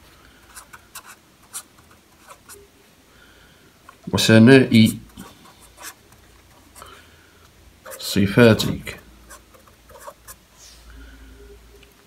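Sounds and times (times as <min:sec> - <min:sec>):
pen scratching on paper: 0:00.4 - 0:02.6, 0:05.1 - 0:06.9, 0:07.8 - 0:08.1, 0:09.3 - 0:10.4.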